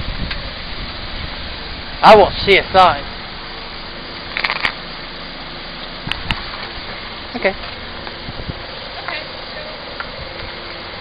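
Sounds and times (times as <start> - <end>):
car engine running quietly: 0.0 - 11.0
tyres rolling over gravel: 1.2 - 11.0.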